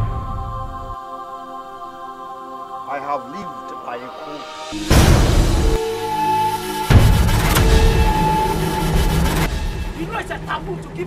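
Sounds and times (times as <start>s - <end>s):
low rumbling drone: 4.4s - 11.0s.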